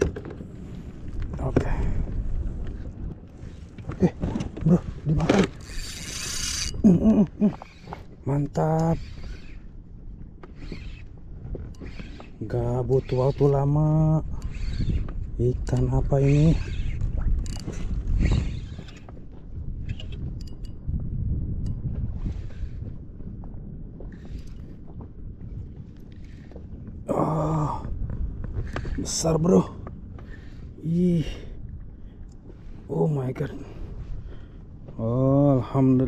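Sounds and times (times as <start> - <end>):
water moving around boat: 0.0 - 20.6
wind rumbling on microphone: 0.0 - 36.0
fishing reel drag buzzing: 5.4 - 6.9, 7.5 - 9.8, 10.4 - 15.2, 15.8 - 19.1.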